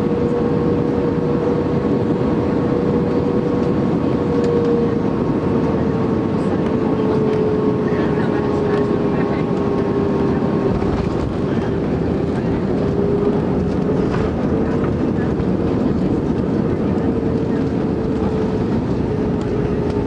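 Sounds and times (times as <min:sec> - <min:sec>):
jet engines roaring in cabin: 0:00.0 - 0:20.0.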